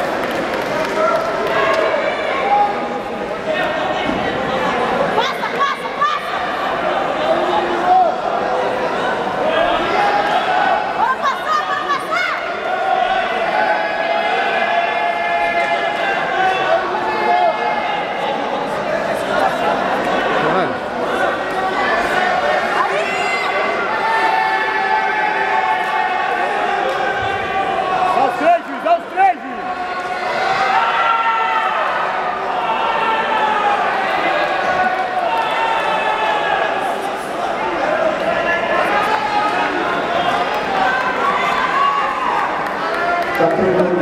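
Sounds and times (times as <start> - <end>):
people talking and shouting: 0.0 - 44.0.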